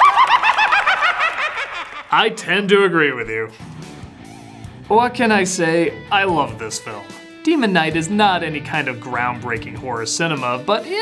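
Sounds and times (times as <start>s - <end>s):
high-pitched cackling laugh: 0.0s - 2.1s.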